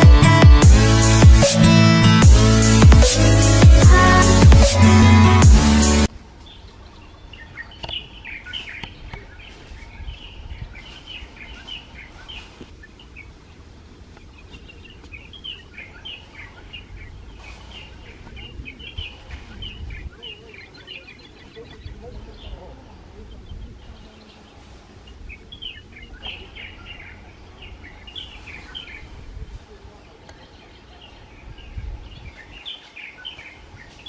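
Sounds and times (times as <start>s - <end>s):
low outdoor rumble: 0.0s - 32.5s
birds chirping: 0.0s - 34.0s.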